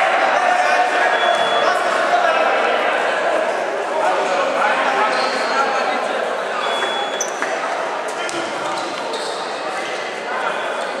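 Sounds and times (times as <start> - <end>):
overlapping voices in sports hall: 0.0 - 11.0.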